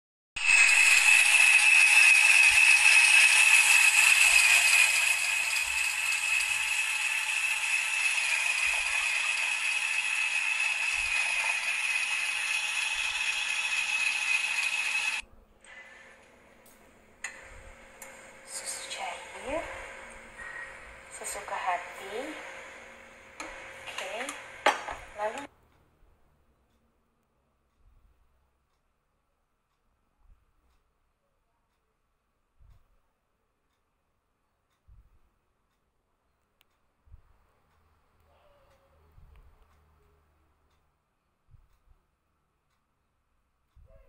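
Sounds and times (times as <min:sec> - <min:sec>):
electric mixer whining: 0:00.4 - 0:15.2, 0:17.2 - 0:25.5.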